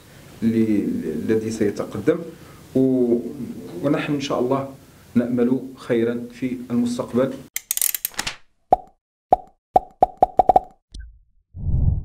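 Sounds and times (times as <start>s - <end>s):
low rumble: 11.0s - 12.0s
deep whoosh: 11.6s - 12.0s.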